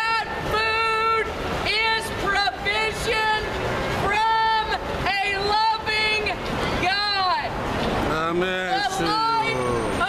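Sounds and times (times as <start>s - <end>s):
woman shouting: 0.0s - 7.5s, 8.7s - 9.6s.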